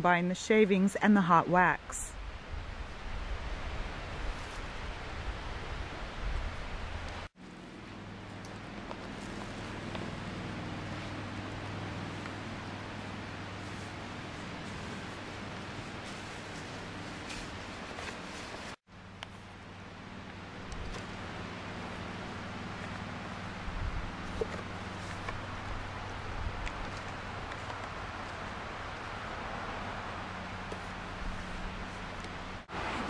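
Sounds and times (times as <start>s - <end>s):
outdoor background hiss: 0.0s - 33.0s.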